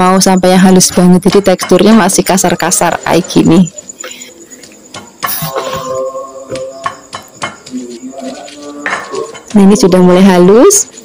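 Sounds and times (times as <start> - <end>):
stone pestle knocking and grinding: 6.5 - 7.8.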